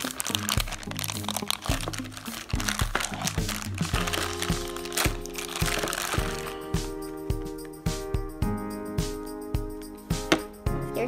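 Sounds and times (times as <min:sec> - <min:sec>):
plastic bag crinkling: 0:00.0 - 0:06.7
background music with steady beat: 0:00.0 - 0:11.0.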